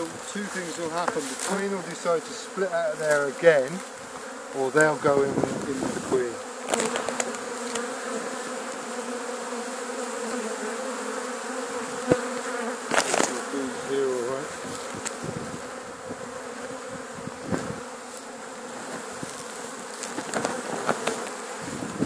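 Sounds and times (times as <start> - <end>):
bees buzzing: 0.0 - 22.0.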